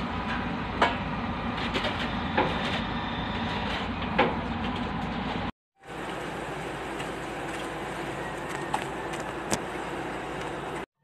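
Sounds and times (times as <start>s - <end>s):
engine running: 0.0s - 10.9s.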